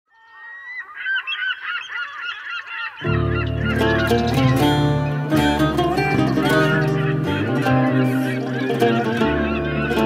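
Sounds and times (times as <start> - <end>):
seagulls calling: 0.1 - 10.0
band music with bass: 3.1 - 10.0.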